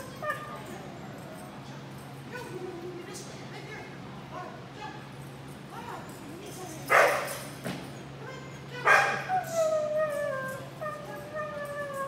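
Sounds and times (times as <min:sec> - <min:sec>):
dog whining: 0:00.0 - 0:00.8, 0:09.1 - 0:12.0
dog barking: 0:06.9 - 0:07.3, 0:08.8 - 0:09.3.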